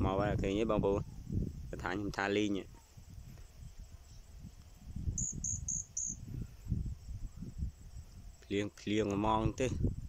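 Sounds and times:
small animal chirping: 5.2 - 6.6.

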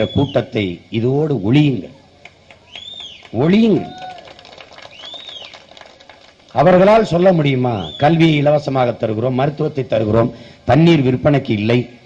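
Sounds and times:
short rising and falling chirp: 2.6 - 3.3.

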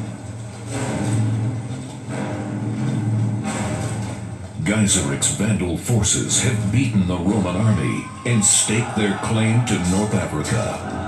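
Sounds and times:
low rumbling drone: 0.0 - 8.2
rushing noise: 0.0 - 11.0.

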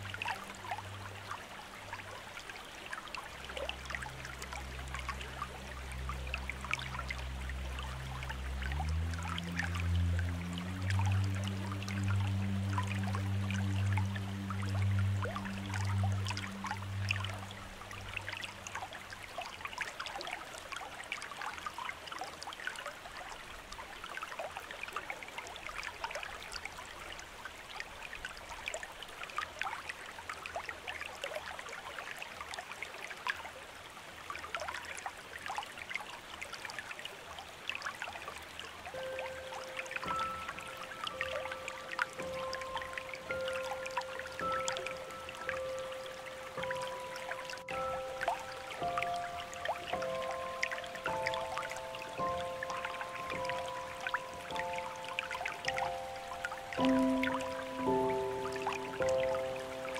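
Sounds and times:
small waterfall splashing over rock: 0.0 - 59.9
low music drone: 3.4 - 19.4, 39.0 - 59.9
water droplet ticks: 38.9 - 59.9.

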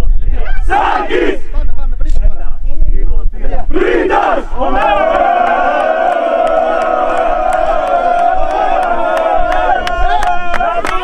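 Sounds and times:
group shouts: 0.4 - 1.4, 3.7 - 11.0
team chanting in a huddle: 0.5 - 1.5, 3.7 - 9.3
long group shout on one note: 4.0 - 11.0.

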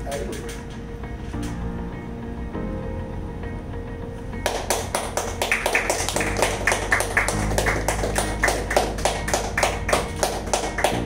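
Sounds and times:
background music: 0.0 - 11.0
hands clapping fast: 4.4 - 11.0.

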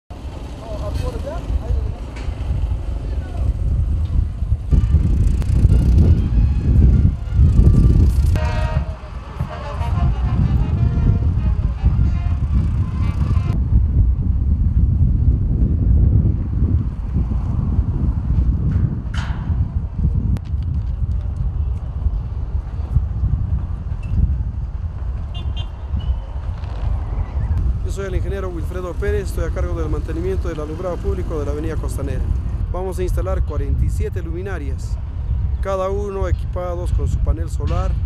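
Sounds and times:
traffic rumble: 0.1 - 38.0
wind on microphone: 0.1 - 38.0
voices: 0.4 - 3.6.

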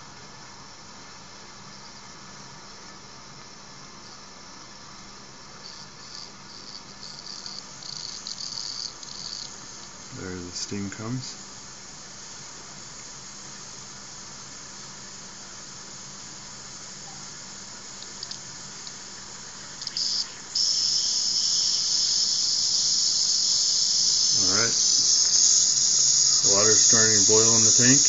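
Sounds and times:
steam hissing from valve: 14.0 - 28.0.

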